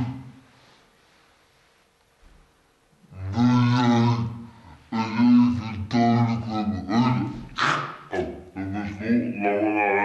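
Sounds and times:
man's long drawn-out vocal sound: 3.1s - 10.0s.

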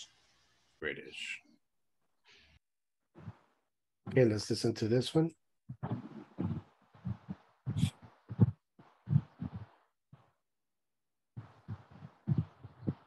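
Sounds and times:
dull thumps or pops: 5.7s - 9.8s, 11.4s - 13.0s.

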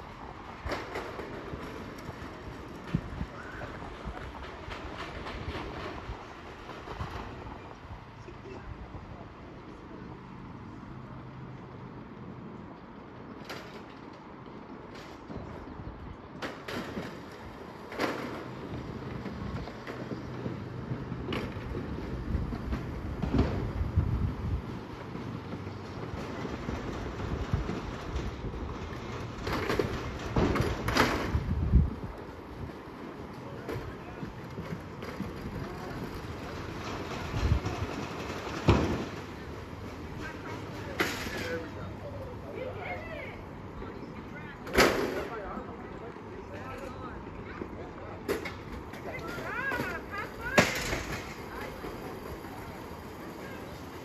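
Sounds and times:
faint voices: 0.0s - 12.6s, 15.2s - 54.0s
chairlift low rumble: 0.0s - 16.4s, 17.0s - 54.0s.

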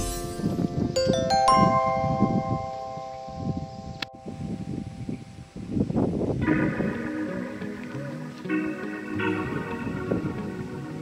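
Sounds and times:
music with bell-like tones: 0.0s - 5.4s.

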